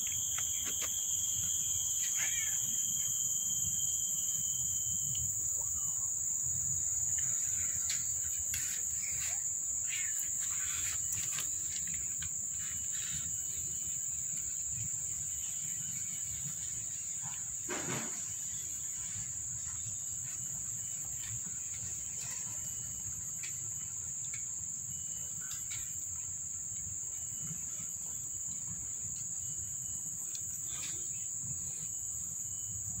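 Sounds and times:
insects droning high-pitched: 0:00.0 - 0:33.0
lower insect tone: 0:00.0 - 0:33.0.

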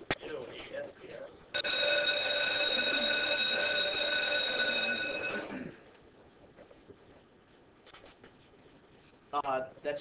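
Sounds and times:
electric school bell ringing: 0:01.6 - 0:05.6.

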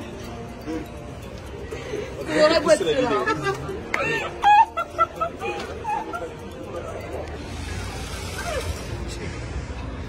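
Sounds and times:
people's voices on a street: 0:00.0 - 0:10.0.

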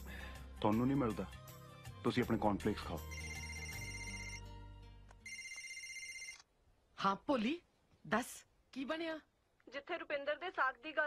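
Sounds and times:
phone ringtone ringing: 0:03.0 - 0:04.6, 0:05.2 - 0:06.5.

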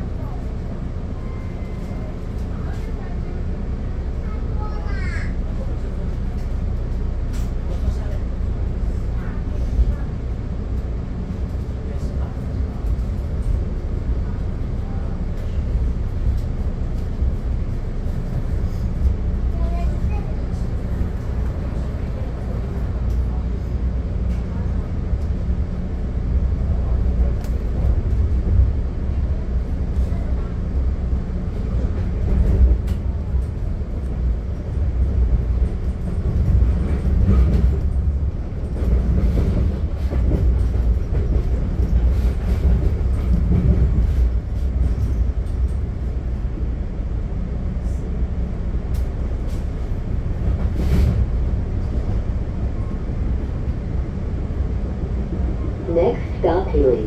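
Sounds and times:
train wheels rumbling on rails: 0:00.0 - 0:57.0.

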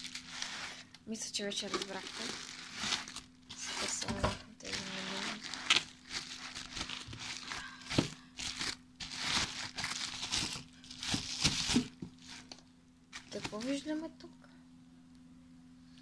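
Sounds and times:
bubble wrap crinkling: 0:00.0 - 0:14.0.

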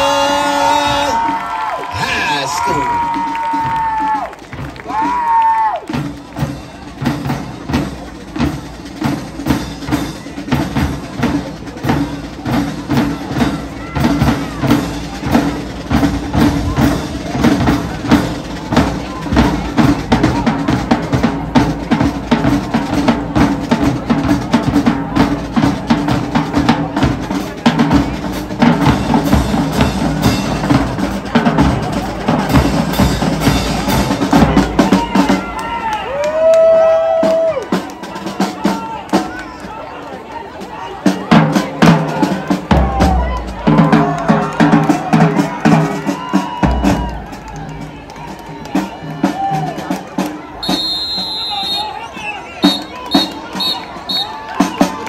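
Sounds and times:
marching drumline cadence: 0:00.0 - 0:55.0.

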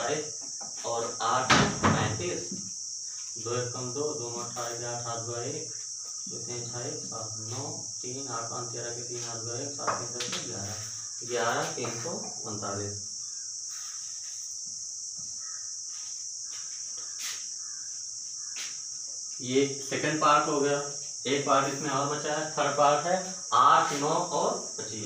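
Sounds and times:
high-pitched hiss: 0:00.0 - 0:25.0.

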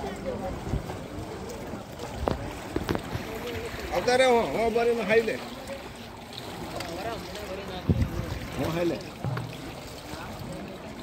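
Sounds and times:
faint voices: 0:00.0 - 0:11.0
pool water splashing: 0:00.0 - 0:11.0
wind noise on microphone: 0:07.8 - 0:08.6.

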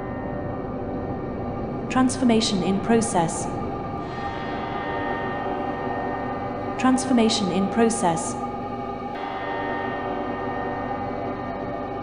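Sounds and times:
drone of sustained synth tones: 0:00.0 - 0:12.0.

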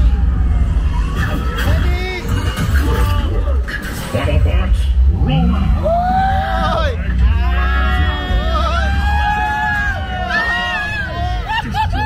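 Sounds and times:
deep ride rumble: 0:00.0 - 0:12.0.

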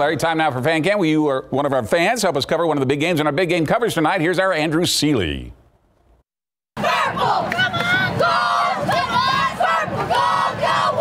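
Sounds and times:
cheerleaders yelling through megaphones: 0:06.8 - 0:11.0
crowd noise: 0:06.8 - 0:11.0.

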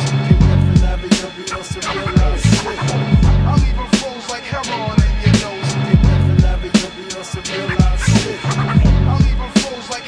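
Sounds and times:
hip hop beat: 0:00.0 - 0:10.0
deep bass line: 0:00.1 - 0:01.1, 0:01.8 - 0:04.0, 0:05.0 - 0:06.7, 0:07.7 - 0:09.5
sampled melody: 0:00.3 - 0:09.6.

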